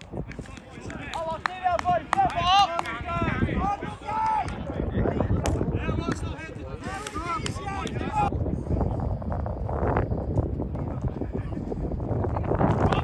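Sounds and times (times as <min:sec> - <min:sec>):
footballers shouting: 0:00.4 - 0:08.3.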